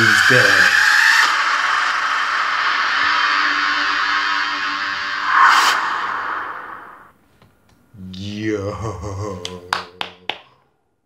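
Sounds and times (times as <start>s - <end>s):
dense sustained music swell: 0.0s - 7.1s.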